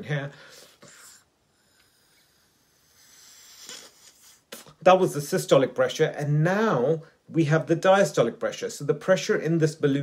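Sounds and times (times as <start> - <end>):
man speaking: 0.0 - 0.5, 4.6 - 10.0.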